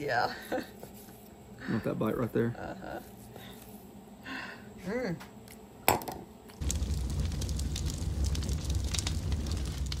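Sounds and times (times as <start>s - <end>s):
fire crackling and rumbling: 6.6s - 10.0s.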